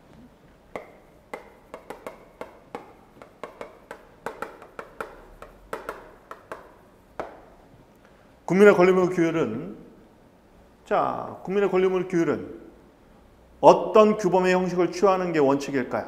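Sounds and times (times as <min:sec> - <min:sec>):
chalk tapping and scratching: 0:00.7 - 0:07.6.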